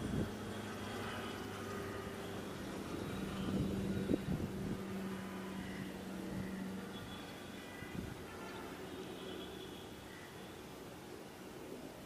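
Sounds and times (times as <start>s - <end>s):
propeller aircraft droning: 0.0s - 7.6s.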